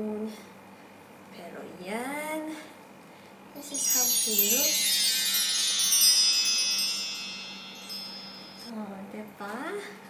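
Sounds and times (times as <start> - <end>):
magical sparkle chime: 3.6 - 8.7.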